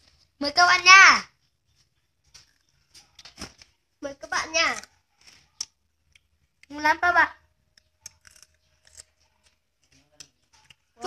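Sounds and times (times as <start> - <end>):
unripe plum being bitten and chewed: 7.7 - 10.9.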